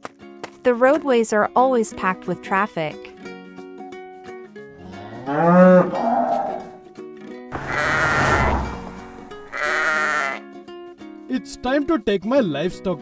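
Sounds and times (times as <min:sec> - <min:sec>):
plucked string background music: 0:00.0 - 0:13.0
cartoon cow mooing: 0:04.8 - 0:06.7, 0:07.6 - 0:10.4
long harsh animal call: 0:07.5 - 0:10.4
sheep bleating: 0:07.5 - 0:10.5.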